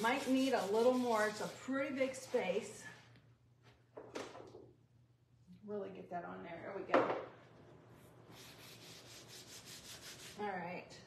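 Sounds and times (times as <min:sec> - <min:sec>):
sponge rubbing on leather: 0:00.0 - 0:01.6, 0:08.0 - 0:10.5.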